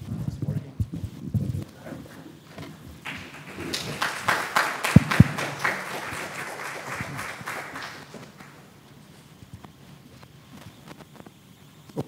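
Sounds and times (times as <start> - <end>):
audience applauding: 2.7 - 8.9.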